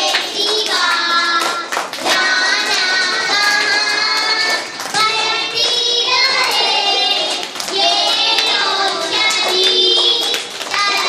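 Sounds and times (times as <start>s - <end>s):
girls singing into a microphone: 0.0s - 11.0s.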